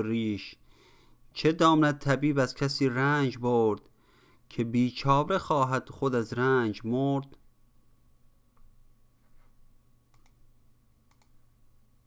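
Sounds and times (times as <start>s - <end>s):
faint steady hum: 0.0s - 12.0s
computer mouse clicks: 10.1s - 10.4s, 11.1s - 11.4s.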